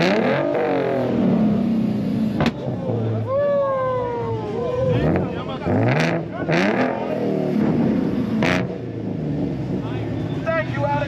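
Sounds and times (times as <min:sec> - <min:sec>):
car engine revving: 0:00.0 - 0:03.2, 0:04.4 - 0:11.0
exhaust bangs: 0:04.8 - 0:11.0.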